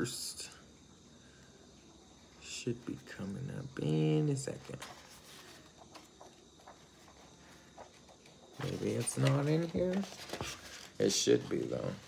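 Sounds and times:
book pages flipping: 0:04.4 - 0:12.0.

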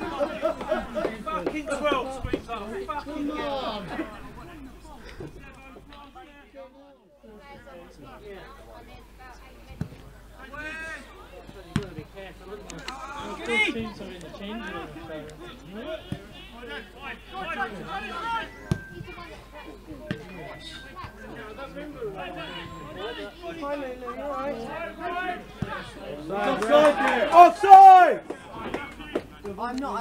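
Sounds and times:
people shouting: 0:24.5 - 0:28.2.

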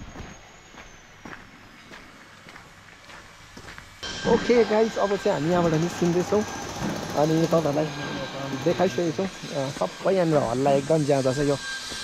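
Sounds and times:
footsteps on gravel: 0:00.0 - 0:04.0, 0:08.7 - 0:12.0.

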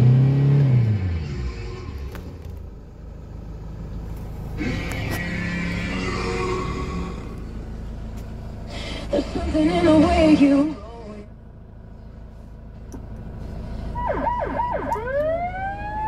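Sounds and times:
van engine idling: 0:00.1 - 0:16.0.

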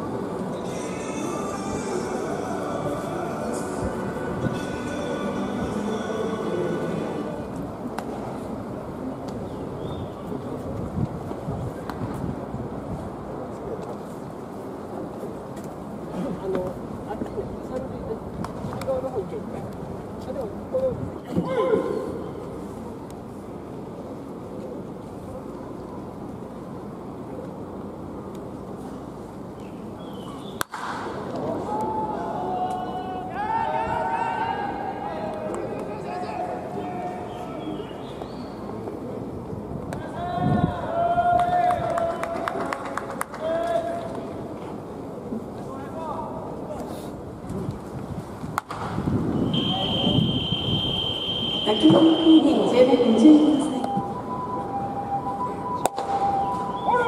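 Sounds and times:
murmur of spectators' voices: 0:00.0 - 0:57.0
outdoor background noise: 0:00.0 - 0:57.0
sharp crack: 0:30.6 - 0:31.4, 0:48.6 - 0:49.0
high-pitched tone: 0:49.6 - 0:57.0.

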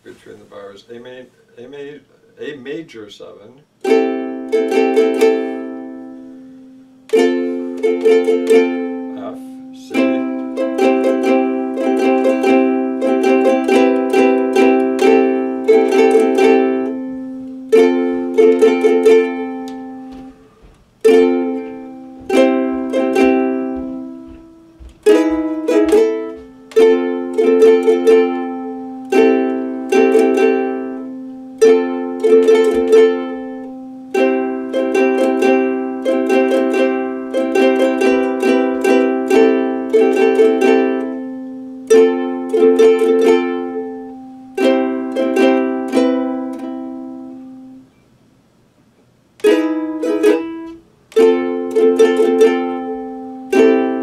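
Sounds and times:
ukulele strumming chords: 0:03.6 - 0:48.0, 0:49.1 - 0:54.0.

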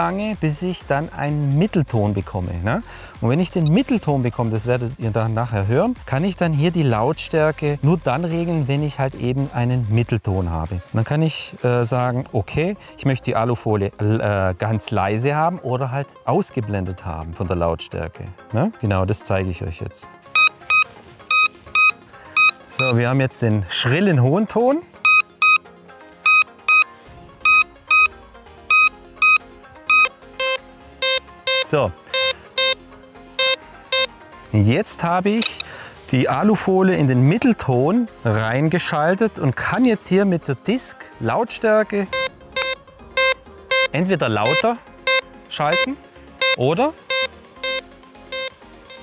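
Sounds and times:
metal detector beeps: 0:20.4 - 0:23.0, 0:25.0 - 0:25.6, 0:26.2 - 0:28.1, 0:28.7 - 0:32.8, 0:33.4 - 0:34.1, 0:35.4 - 0:35.7, 0:42.1 - 0:49.0.

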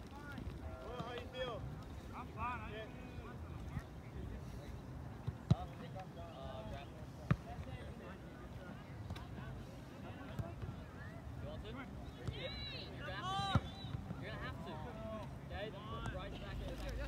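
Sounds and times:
distant shouts and voices: 0:00.0 - 0:17.0.

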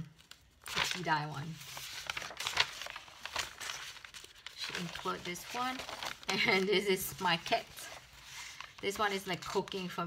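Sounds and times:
paper rustling and crinkling: 0:00.2 - 0:10.0.

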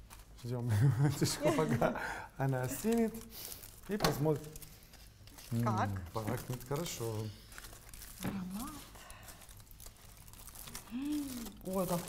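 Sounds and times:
aluminium foil crinkling: 0:00.0 - 0:12.0.

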